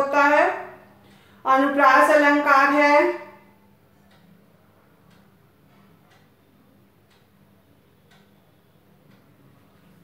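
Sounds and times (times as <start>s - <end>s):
wall clock ticking: 0.0s - 10.0s.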